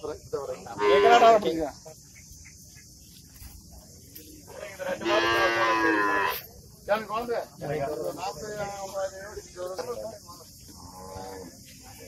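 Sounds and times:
cow mooing: 5.0 - 6.4.

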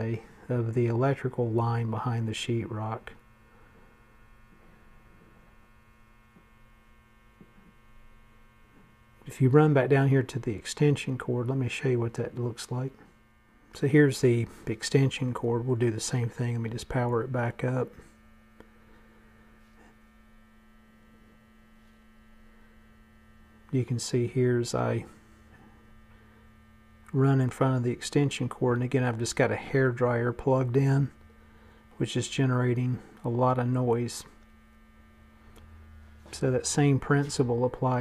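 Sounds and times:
electrical mains hum: 0.0 - 38.0.

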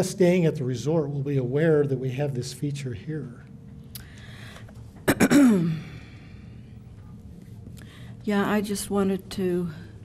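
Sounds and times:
person clearing throat: 5.0 - 6.0.

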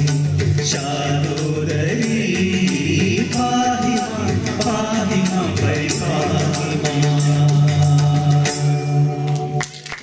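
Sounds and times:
instrumental accompaniment: 0.0 - 10.0
light percussion: 0.0 - 10.0
man singing: 0.6 - 9.7.

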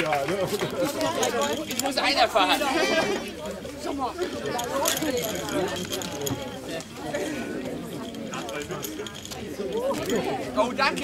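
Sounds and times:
people chattering indistinctly: 0.0 - 11.0.

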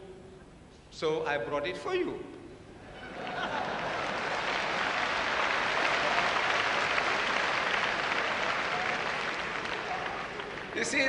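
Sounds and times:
audience applauding: 3.2 - 11.0.

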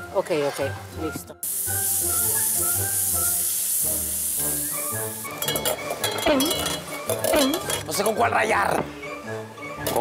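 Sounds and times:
background music: 0.0 - 10.0
chicken sizzling in oil: 1.4 - 7.5
spatula clinking and scraping: 5.3 - 8.2.

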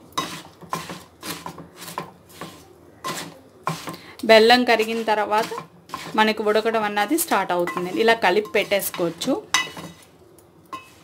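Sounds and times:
wooden spatula scraping metal pot: 0.0 - 11.0.

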